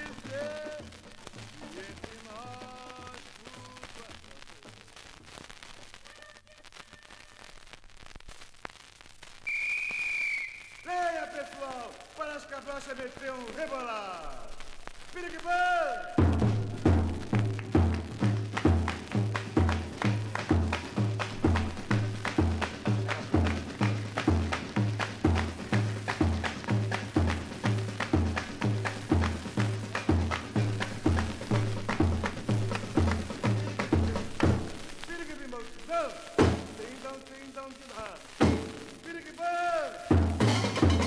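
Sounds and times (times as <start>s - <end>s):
low drums steady beat: 0.0s - 3.9s, 16.0s - 37.1s, 38.2s - 39.0s, 39.9s - 41.0s
sharp quick percussion hits: 15.9s - 35.2s, 35.9s - 36.9s, 38.4s - 39.0s, 40.1s - 41.0s.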